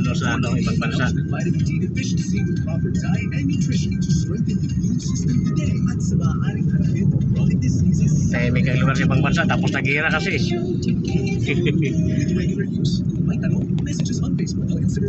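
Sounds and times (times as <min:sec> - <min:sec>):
car cabin road and engine rumble: 0:00.0 - 0:15.0
faint voices: 0:00.0 - 0:15.0.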